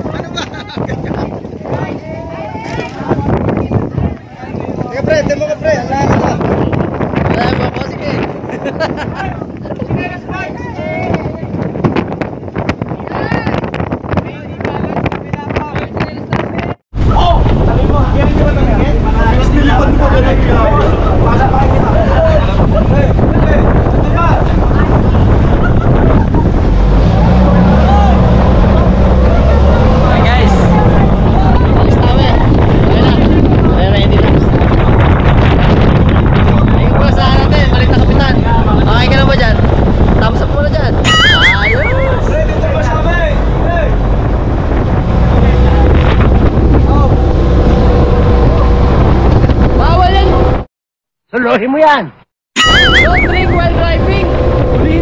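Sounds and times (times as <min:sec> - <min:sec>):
people laughing: 0:00.0 - 0:01.3, 0:08.3 - 0:10.0, 0:41.1 - 0:42.3, 0:52.6 - 0:53.7
people talking: 0:00.0 - 0:11.8, 0:12.9 - 0:26.5, 0:27.4 - 0:34.5, 0:36.4 - 0:39.6, 0:40.2 - 0:44.0, 0:46.8 - 0:47.2, 0:51.3 - 0:55.0
wind buffeting microphone: 0:00.0 - 0:50.7, 0:52.6 - 0:55.0
boat engine running: 0:17.0 - 0:34.2, 0:41.0 - 0:50.6, 0:52.6 - 0:55.0.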